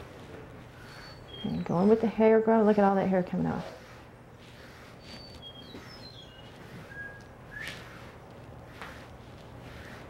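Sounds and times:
small birds chirping: 0.8s - 2.3s, 4.6s - 7.7s
brush scratching horse coat: 1.5s - 10.0s.

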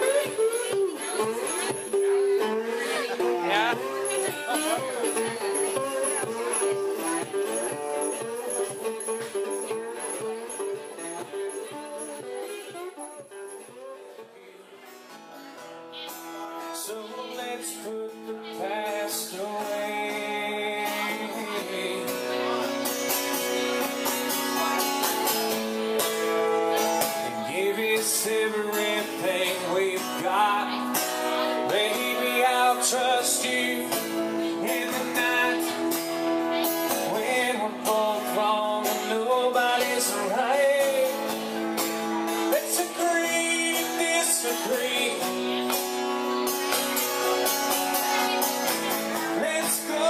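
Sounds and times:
man singing: 0.0s - 11.9s, 16.4s - 22.8s, 25.8s - 45.8s, 48.9s - 50.0s
acoustic guitar: 0.0s - 50.0s
resonator guitar picking: 0.0s - 50.0s.

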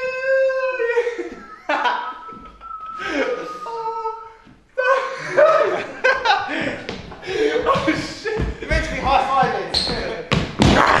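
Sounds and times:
man talking: 3.0s - 5.8s, 6.5s - 10.4s
heavy thuds: 6.2s - 11.0s.

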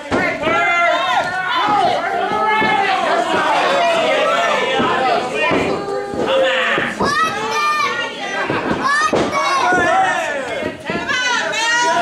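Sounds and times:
spectators shouting: 0.0s - 12.0s.

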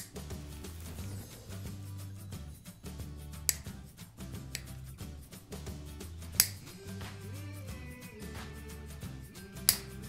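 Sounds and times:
nail clippers snipping: 0.0s - 0.2s, 3.4s - 3.8s, 4.4s - 5.0s, 6.3s - 6.8s, 9.4s - 10.0s
background music: 0.0s - 10.0s.

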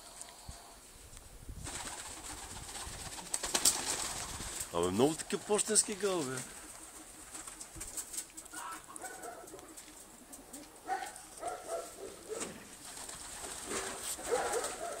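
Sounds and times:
pigeons cooing: 3.2s - 15.0s.

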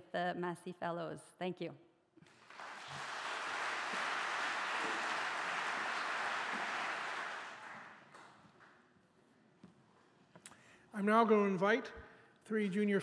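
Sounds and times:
audience applauding: 2.2s - 8.4s.

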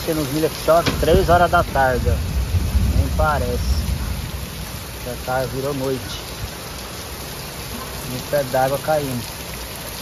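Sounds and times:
heavy rain pouring: 0.0s - 10.0s.

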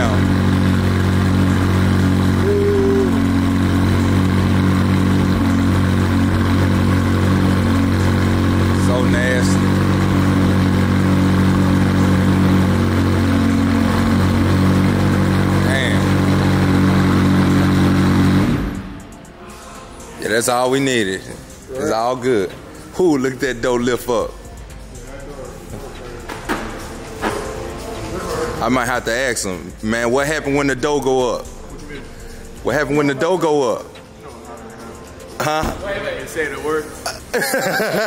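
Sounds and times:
car engine idling: 0.0s - 19.4s, 22.8s - 37.0s.

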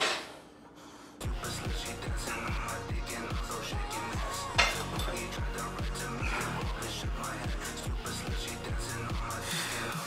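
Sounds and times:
electronic music with kick drum: 1.2s - 10.0s.

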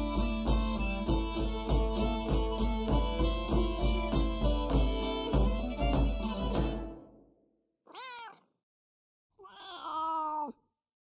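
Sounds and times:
cat meowing: 7.9s - 8.5s, 9.4s - 10.6s.

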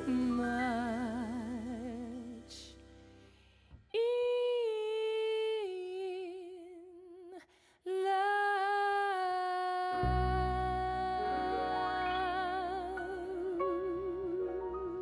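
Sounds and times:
piano low notes: 0.0s - 4.4s, 9.9s - 15.0s
upright bass: 10.0s - 14.9s.

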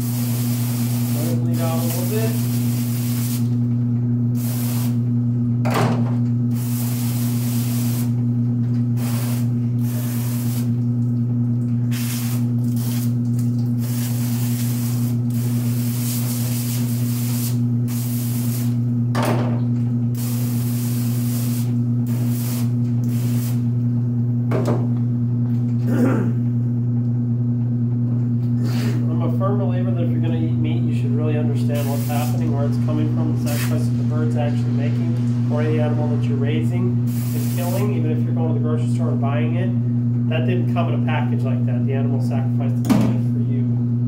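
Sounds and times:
hose nozzle spraying into steel sink: 0.0s - 3.5s, 4.4s - 5.0s, 9.0s - 10.8s, 11.9s - 13.1s, 13.8s - 18.8s, 20.2s - 23.6s, 31.8s - 32.4s, 33.5s - 33.8s, 37.1s - 37.8s
low machine hum: 0.0s - 44.0s.

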